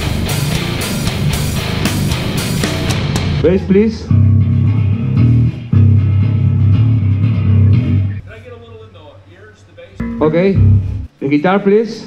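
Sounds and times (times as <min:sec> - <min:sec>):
electric bass guitar notes: 0:00.0 - 0:08.2, 0:10.0 - 0:11.2.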